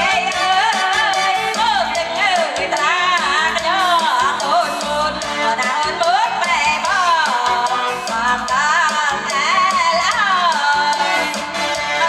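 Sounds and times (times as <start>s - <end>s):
electronic keyboard with steady beat: 0.0s - 12.0s
woman singing into a microphone: 0.0s - 12.0s.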